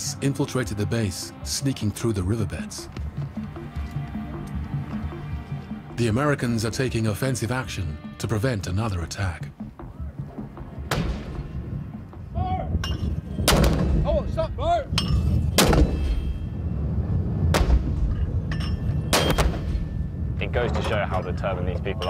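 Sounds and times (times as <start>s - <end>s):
low rumble: 12.6s - 22.0s.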